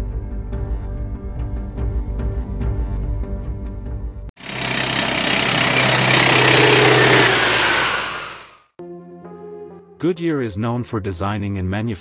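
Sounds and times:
loud engine noise: 4.4 - 8.7.

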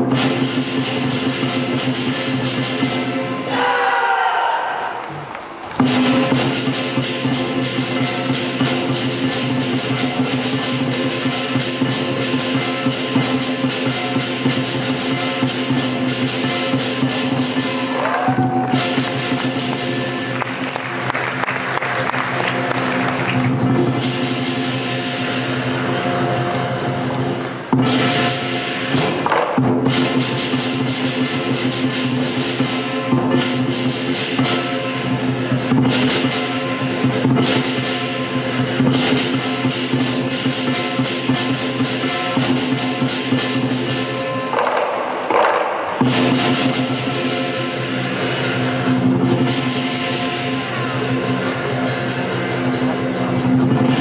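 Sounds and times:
drum: 0.0 - 3.5, 5.7 - 54.0
gong: 0.0 - 4.2, 5.8 - 21.1, 22.4 - 54.0
cymbals: 0.0 - 54.0.

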